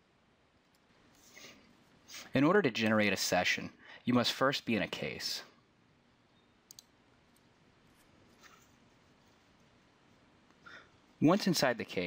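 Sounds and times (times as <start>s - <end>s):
computer mouse clicks: 6.6s - 8.7s.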